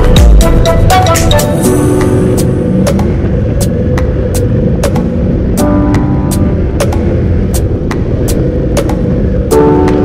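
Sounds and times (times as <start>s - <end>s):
background music with drum beat: 0.0s - 3.1s.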